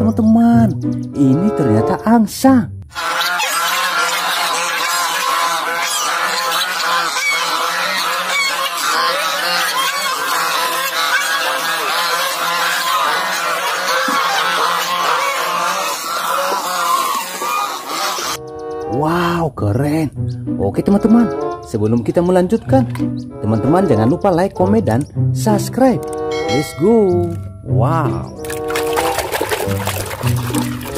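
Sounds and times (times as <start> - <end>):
geese honking: 2.9 - 19.4, 28.2 - 30.9.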